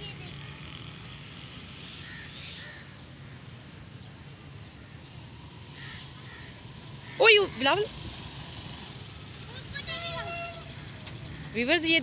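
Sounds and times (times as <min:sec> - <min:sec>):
low traffic hum: 0:00.0 - 0:12.0.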